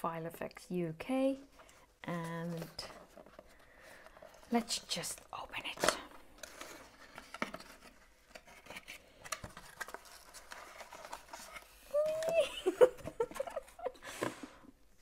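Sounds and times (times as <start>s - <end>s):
paper rustling: 5.6s - 14.3s.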